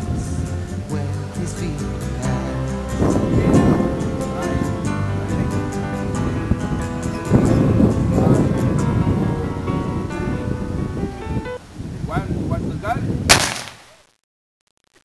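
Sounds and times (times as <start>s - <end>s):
music: 0.0s - 11.6s
cannon firing crack: 13.3s - 13.9s.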